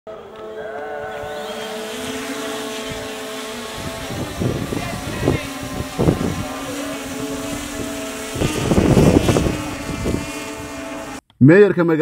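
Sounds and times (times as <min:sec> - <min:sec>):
drone rotors whining: 0:00.1 - 0:11.2.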